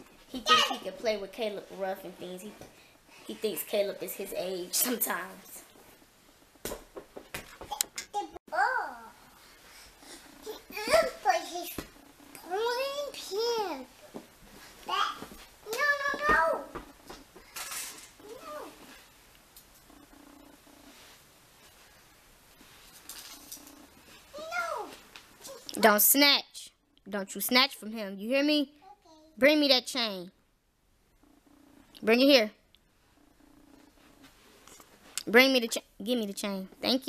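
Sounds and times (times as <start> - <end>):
faint low hum: 0.0 - 37.0
children's high-pitched vocalising: 18.2 - 19.0.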